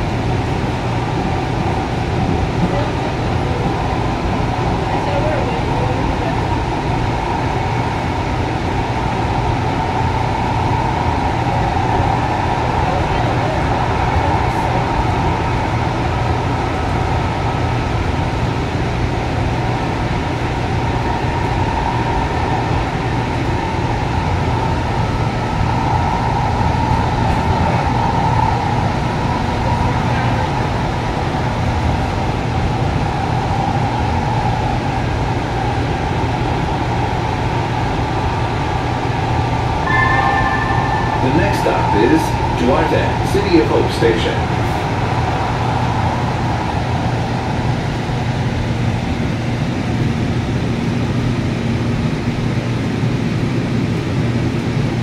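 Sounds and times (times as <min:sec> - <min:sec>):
constant hum: 0:00.0 - 0:55.0
train wheels rumbling on rails: 0:00.0 - 0:55.0.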